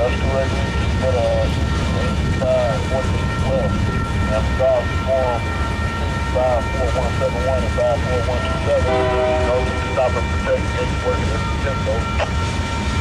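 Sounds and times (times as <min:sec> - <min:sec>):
steady high tones: 0:00.0 - 0:13.0
train wheels rumbling: 0:00.0 - 0:13.0.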